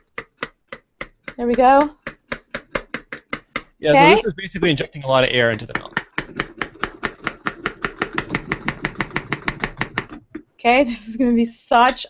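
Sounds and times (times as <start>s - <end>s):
milk frother plunger tapping: 0.0s - 3.8s, 5.4s - 10.5s.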